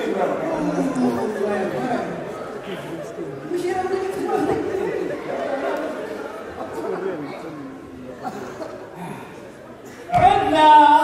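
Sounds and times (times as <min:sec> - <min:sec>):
overlapping chatter: 0:00.0 - 0:11.0.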